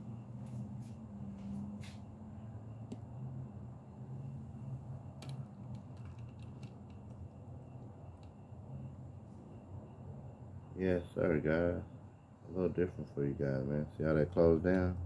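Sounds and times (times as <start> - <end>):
low room hum: 0.0 - 15.0.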